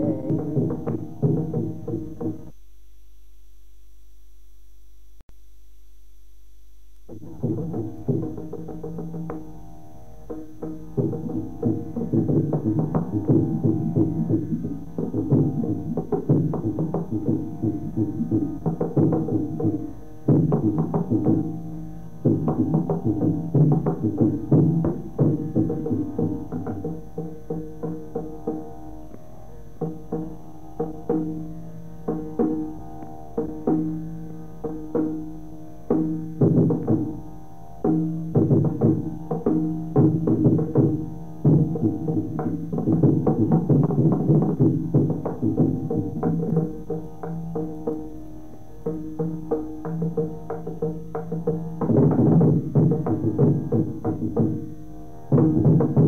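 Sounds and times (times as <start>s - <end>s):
rapid hand drum strokes: 0.0s - 2.6s, 7.1s - 29.0s, 29.8s - 56.0s.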